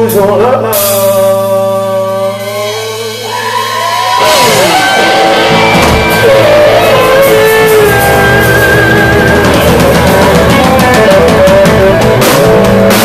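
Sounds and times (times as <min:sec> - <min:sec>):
electric guitar bending notes: 0:00.0 - 0:13.0
live rock band playing: 0:00.0 - 0:13.0.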